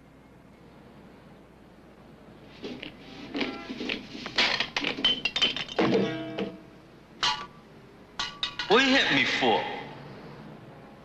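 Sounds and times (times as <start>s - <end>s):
cartoon junk thunks and clinks: 4.4s - 6.6s.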